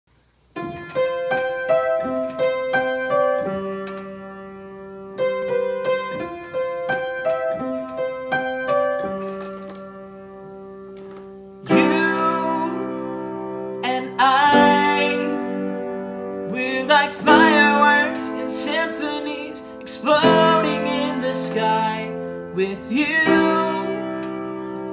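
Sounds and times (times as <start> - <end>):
upright piano playing: 0.5 - 24.9
person singing: 11.6 - 24.9.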